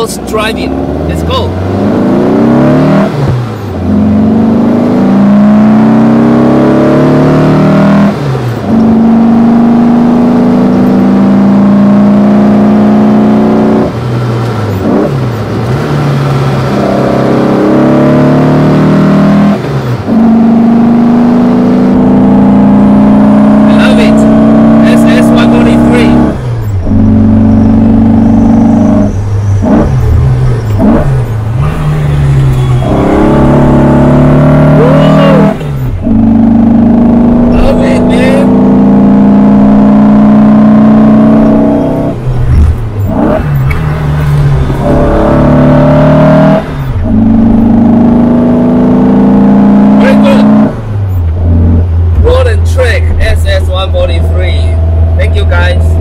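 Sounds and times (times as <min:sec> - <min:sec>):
car engine revving through gears: 0:00.0 - 0:56.0
engine throttle blips: 0:19.5 - 0:56.0.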